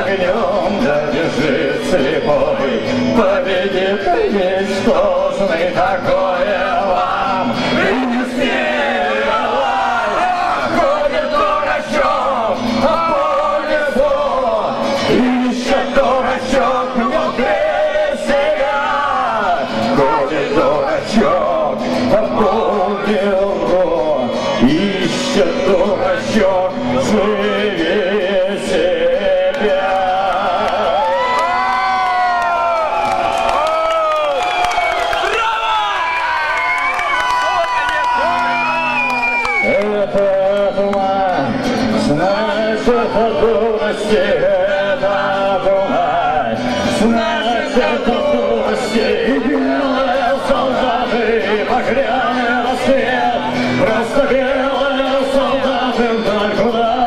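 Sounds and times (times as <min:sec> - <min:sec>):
man singing roughly: 0:00.0 - 0:31.2, 0:39.6 - 0:57.0
electric guitar strumming: 0:00.0 - 0:32.5, 0:37.3 - 0:57.0.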